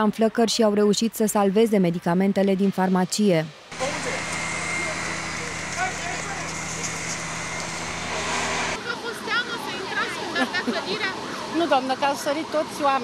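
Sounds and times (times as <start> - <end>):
vehicle engine humming: 3.7 - 13.0.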